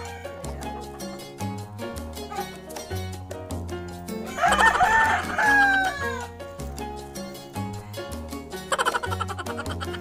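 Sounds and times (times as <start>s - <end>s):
rooster crowing: 0.0s - 0.5s, 4.3s - 6.3s
background music with beat: 0.0s - 10.0s.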